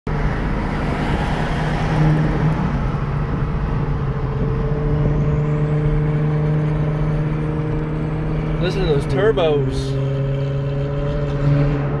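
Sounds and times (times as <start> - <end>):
car engine running steadily: 2.0 - 12.0.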